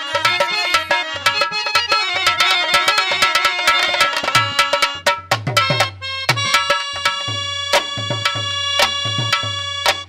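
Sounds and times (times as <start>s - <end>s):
dholak drum strokes: 0.0s - 10.0s
sustained harmonium chords: 0.0s - 10.0s.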